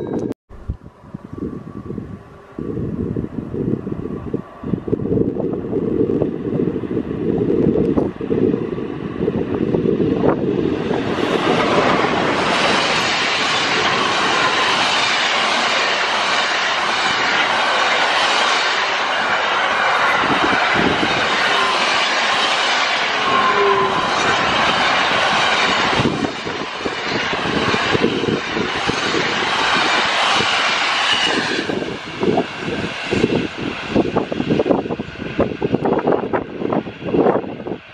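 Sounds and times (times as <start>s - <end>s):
freight train wheels on rail: 0.0s - 37.9s.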